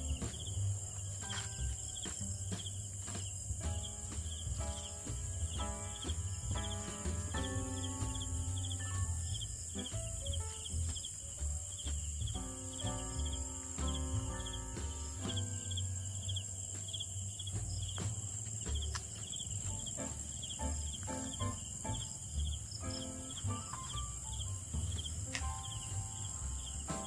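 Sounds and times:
crickets chirping: 0:00.0 - 0:27.0
high-pitched insect trill: 0:05.5 - 0:12.2, 0:12.8 - 0:27.0.

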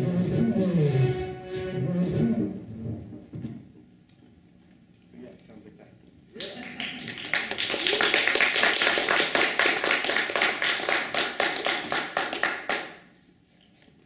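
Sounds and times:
audience applauding: 0:06.4 - 0:13.1.

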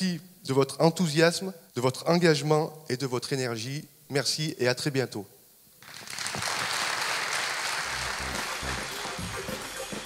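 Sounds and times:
audience applause: 0:05.8 - 0:10.0
background music with steady beat: 0:07.7 - 0:10.0.

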